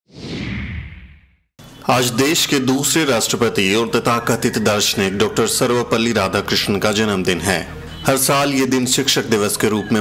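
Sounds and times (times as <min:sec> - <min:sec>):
falling swoosh: 0:00.1 - 0:01.4.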